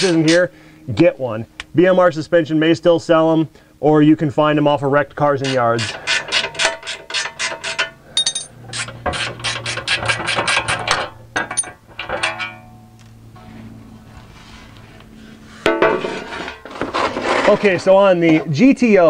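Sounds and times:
low hum: 0.0s - 18.4s.

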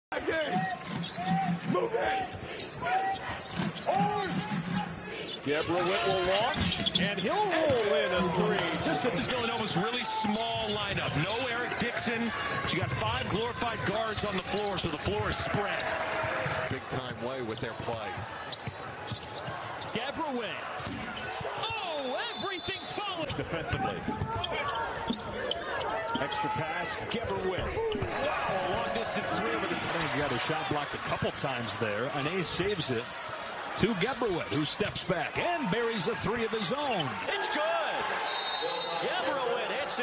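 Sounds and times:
murmur of arena crowd: 0.0s - 40.0s
sneakers squeaking: 0.1s - 11.3s, 17.4s - 21.7s, 22.5s - 29.5s.

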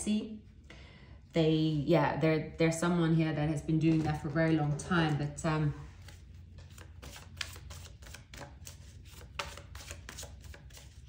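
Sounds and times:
cards being shuffled by hand: 5.9s - 11.0s.

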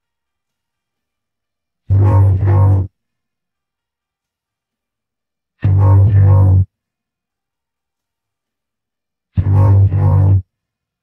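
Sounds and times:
low bass notes: 1.9s - 2.9s, 5.6s - 6.7s, 9.4s - 10.5s.

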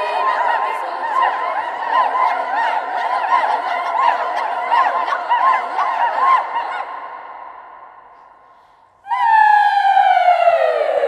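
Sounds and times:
children's choir vocal swoops: 0.0s - 11.0s.

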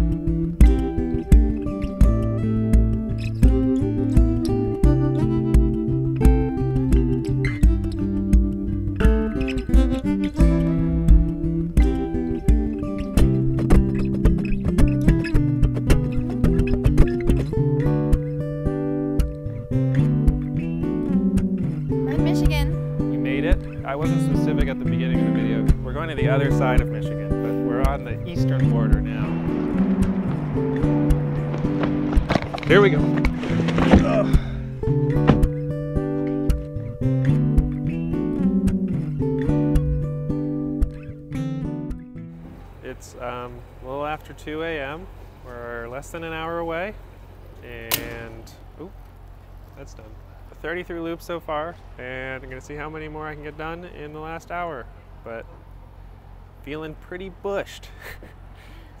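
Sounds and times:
looped guitar music with beat: 0.0s - 42.6s
voices talking: 22.0s - 34.6s.

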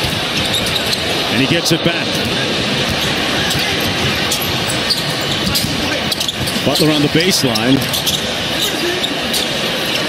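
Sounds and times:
arena crowd noise: 0.0s - 10.0s
sharp court noises: 0.0s - 10.0s
basketball bouncing: 2.1s - 8.2s.

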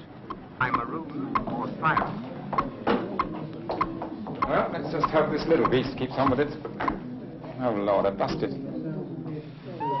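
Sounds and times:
loudspeaker ticking: 0.3s - 3.3s.

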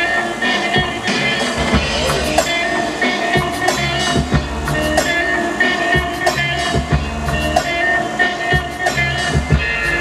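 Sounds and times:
hip-hop beat with deep bass: 0.0s - 10.0s.

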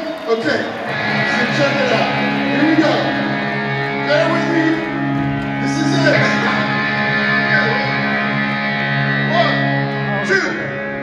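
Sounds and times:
electric guitar sustained chord: 0.8s - 11.0s.

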